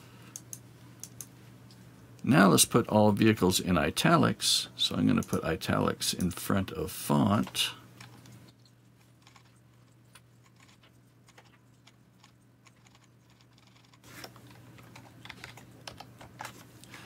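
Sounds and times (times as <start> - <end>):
keyboard typing: 10.4 - 16.6.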